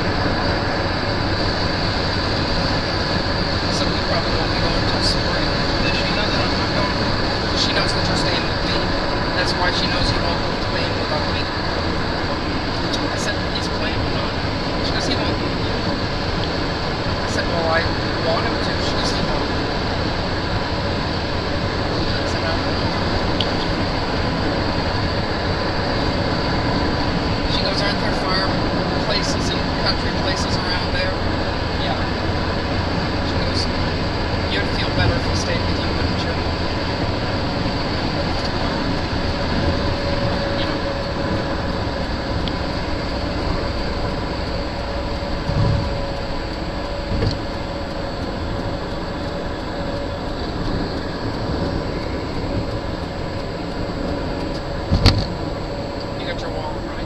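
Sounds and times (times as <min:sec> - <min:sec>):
road and engine noise: 0:00.0 - 0:57.0.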